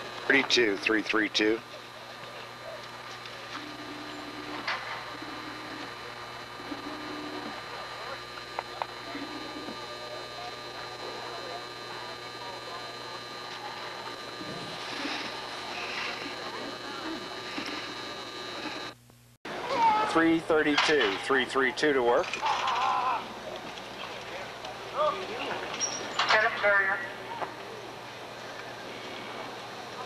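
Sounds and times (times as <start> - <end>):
faint indistinct voices: 0.0 - 30.0
steady hum: 0.0 - 30.0.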